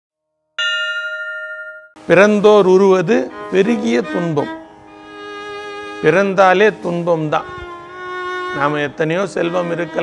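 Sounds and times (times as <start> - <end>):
bell-like chime ringing: 0.6 - 2.0.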